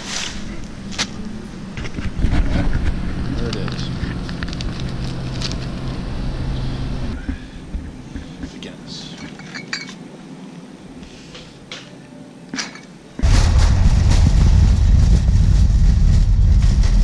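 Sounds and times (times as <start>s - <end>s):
cart rumbling on asphalt: 1.8s - 8.7s, 13.2s - 17.0s.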